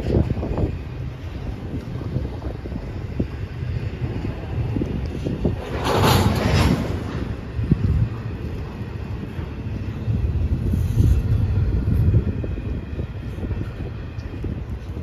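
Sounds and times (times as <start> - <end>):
freight train wheels rumbling on rails: 0.0 - 15.0.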